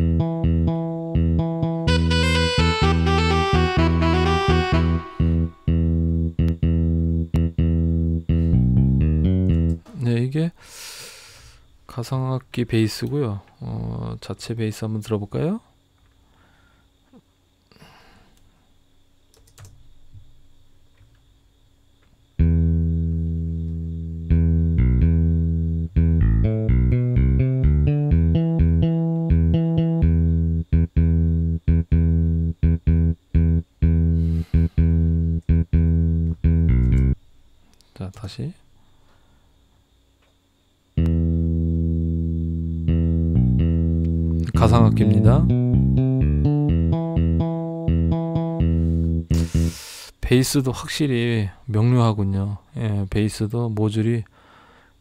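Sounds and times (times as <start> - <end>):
solo bass line: 0.0 - 9.9, 22.4 - 37.2, 41.0 - 49.8.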